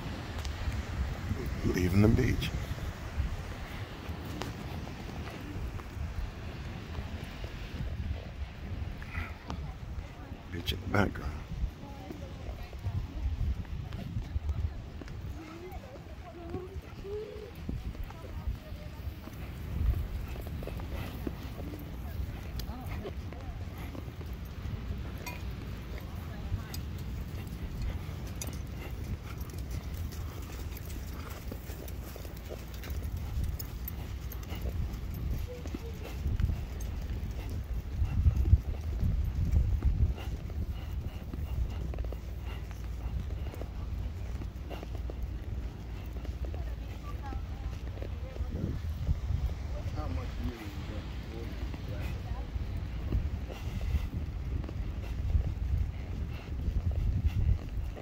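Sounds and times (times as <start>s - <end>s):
horse hoofbeats on sand: 0.0s - 58.0s
steady low rumble: 0.0s - 58.0s
faint voices: 0.1s - 58.0s.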